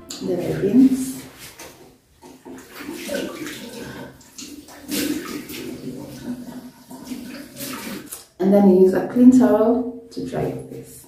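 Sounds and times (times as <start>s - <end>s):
water splashing at a sink: 0.2s - 8.3s.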